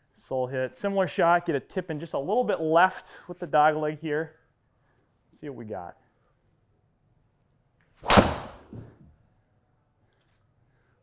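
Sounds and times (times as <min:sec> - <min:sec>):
golf driver striking ball: 0:08.0 - 0:08.9.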